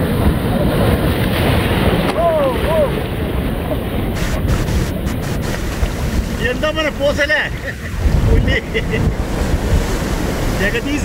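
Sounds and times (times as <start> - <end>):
surf washing over rocks: 0.0 - 11.0
wind rumbling on microphone: 0.0 - 11.0.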